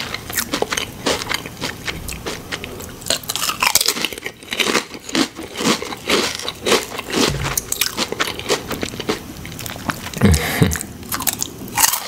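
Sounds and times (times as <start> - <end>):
potato chip crunching: 0.0 - 10.3, 11.1 - 12.0.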